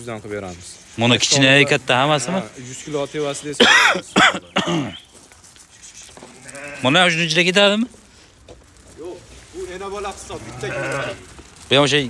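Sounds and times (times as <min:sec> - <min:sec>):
sheep bleating: 0:01.4 - 0:02.9, 0:06.2 - 0:07.4, 0:10.2 - 0:11.4.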